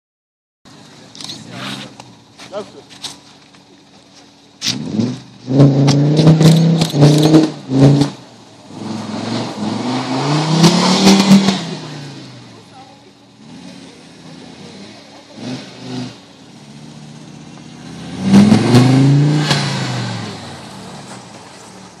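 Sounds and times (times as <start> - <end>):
car engine revving: 0.7 - 22.0.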